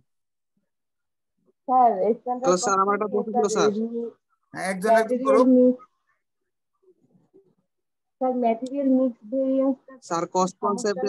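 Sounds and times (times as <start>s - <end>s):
person talking: 4.6s - 5.8s, 8.4s - 11.0s.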